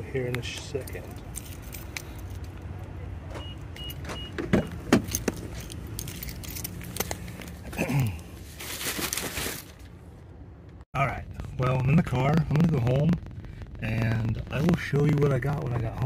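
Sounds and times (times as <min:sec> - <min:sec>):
low outdoor rumble: 0:00.0 - 0:16.0
keys jangling: 0:01.0 - 0:02.6, 0:05.0 - 0:07.4
rustling: 0:05.1 - 0:10.2.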